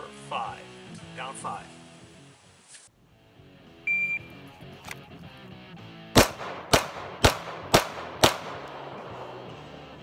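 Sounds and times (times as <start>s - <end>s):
faint guitar music: 0.0s - 6.2s, 8.6s - 10.0s
shot timer beep: 3.9s - 4.4s.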